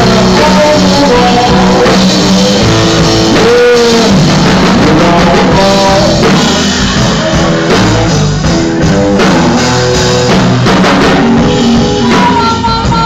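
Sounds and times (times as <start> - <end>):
blues-rock band playing: 0.0 - 13.0
electric guitar sliding note: 11.4 - 13.0.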